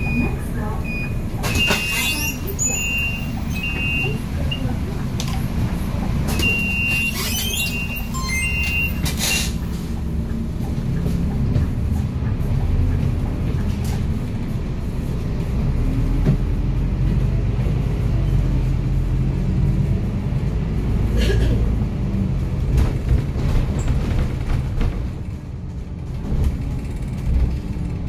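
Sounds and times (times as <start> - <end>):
electronic warning beeps: 0.0 - 4.7, 6.3 - 9.1
bus engine rumble: 0.0 - 28.0
road noise: 0.0 - 28.0.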